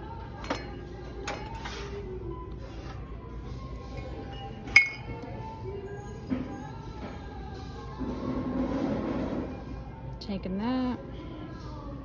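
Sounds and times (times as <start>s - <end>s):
ceramic mugs clinking: 4.4s - 5.2s.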